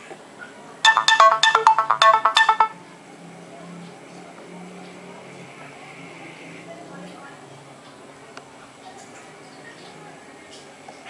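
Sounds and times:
electronic chime notification: 0:00.9 - 0:02.8.

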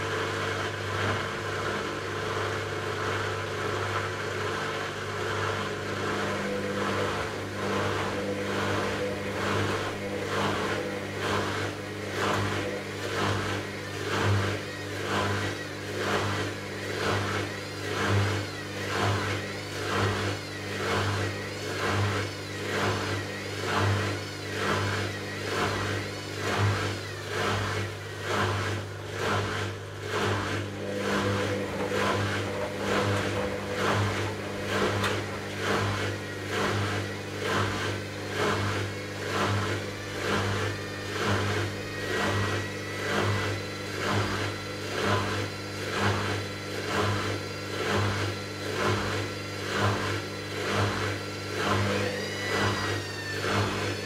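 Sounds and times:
washing machine motor hum: 0:00.0 - 0:54.0.

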